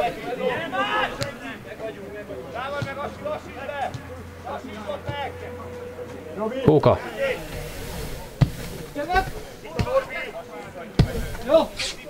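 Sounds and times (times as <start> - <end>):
bursts of voices: 0.0 - 12.0
football kick thuds: 9.7 - 10.2, 11.0 - 11.6.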